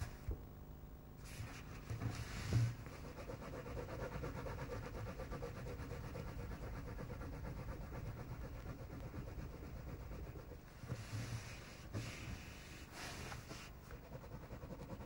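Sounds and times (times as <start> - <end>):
crayon scribbling on paper: 2.9 - 15.0.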